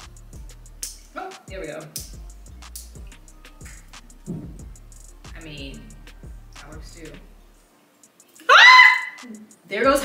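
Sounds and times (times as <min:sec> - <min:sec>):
woman shrieking: 0:08.4 - 0:09.3.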